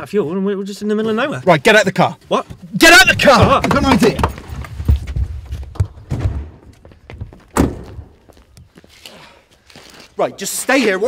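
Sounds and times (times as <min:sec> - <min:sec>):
handling noise and knocks: 0:02.5 - 0:08.2
car door thunk: 0:07.5 - 0:08.1.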